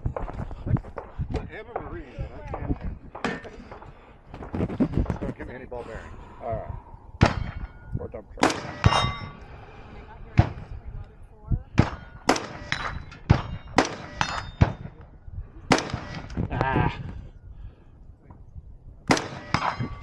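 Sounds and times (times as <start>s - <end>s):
gunshots: 7.2s - 7.7s, 8.4s - 9.3s, 11.8s - 15.0s, 15.7s - 16.4s, 19.1s - 20.0s
steel targets ringing: 7.3s - 9.4s, 12.1s - 14.8s.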